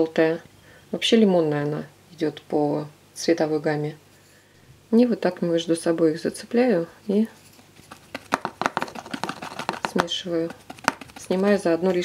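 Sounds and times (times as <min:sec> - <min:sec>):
paintbrush tapping plastic palette: 0:07.9 - 0:12.0.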